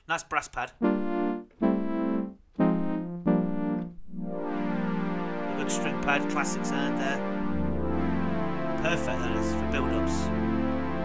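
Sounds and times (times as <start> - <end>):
synthesizer brass pad chords: 0.8 - 11.0
synthesizer string pad chord: 0.8 - 11.0.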